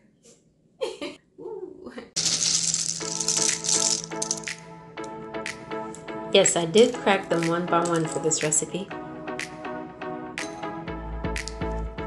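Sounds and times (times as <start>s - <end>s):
pistachios rattling in a bowl: 2.2s - 4.6s
background music held chord: 4.1s - 12.0s.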